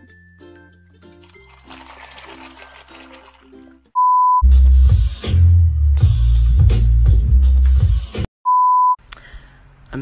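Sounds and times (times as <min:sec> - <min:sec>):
milk pouring onto cereal: 0:01.1 - 0:03.7.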